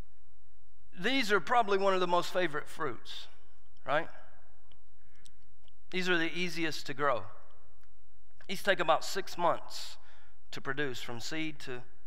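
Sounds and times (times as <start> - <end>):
man talking: 1.0 - 3.3, 3.9 - 4.2, 5.9 - 7.4, 8.5 - 11.9.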